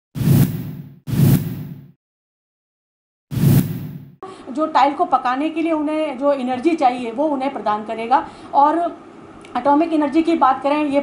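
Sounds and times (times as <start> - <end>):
whoosh sound effects: 0.2 - 1.9, 3.3 - 4.2.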